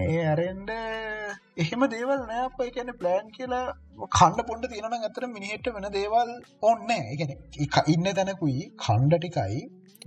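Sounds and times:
man talking: 0.0s - 9.7s.

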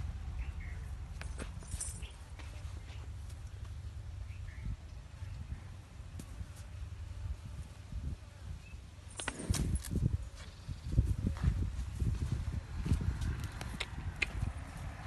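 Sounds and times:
wind rumble on microphone: 4.2s - 15.0s.

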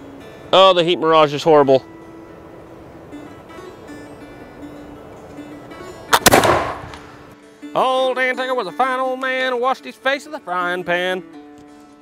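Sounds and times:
musket gunshot: 6.1s - 7.2s.

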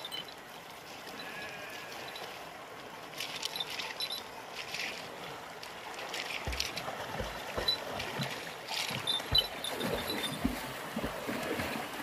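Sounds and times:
swimmers splashing in water: 5.6s - 12.0s.

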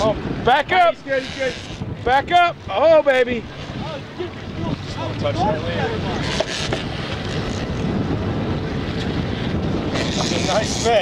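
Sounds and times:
boat engine running: 0.0s - 11.0s
water rushing: 0.0s - 11.0s
wind on microphone: 0.0s - 11.0s.

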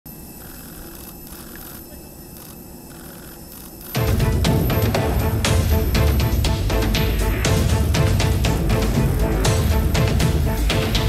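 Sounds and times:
steady low rumble: 1.6s - 11.0s.

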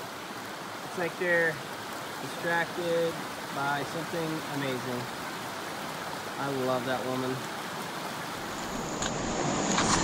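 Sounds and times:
water rushing over rocks: 0.0s - 10.0s
wind rumbling on microphone: 8.2s - 10.0s.

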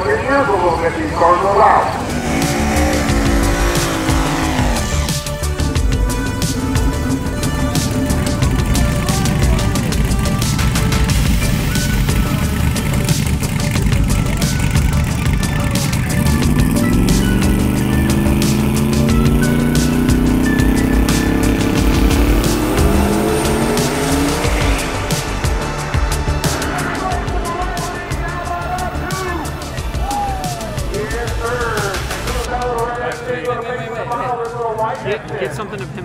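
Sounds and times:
drag car engine revving: 0.0s - 32.6s
background music: 0.0s - 36.0s
drag race engines: 0.0s - 36.0s.

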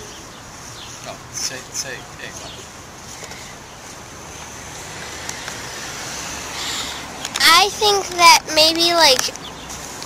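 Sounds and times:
road traffic rushing: 0.0s - 10.0s.

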